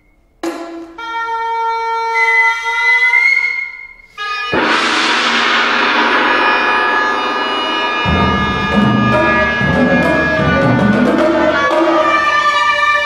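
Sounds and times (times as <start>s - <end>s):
violin sustained high note: 4.4s - 11.0s
oboe sustained notes: 4.5s - 10.9s
tam-tam strike ringing: 4.6s - 10.9s.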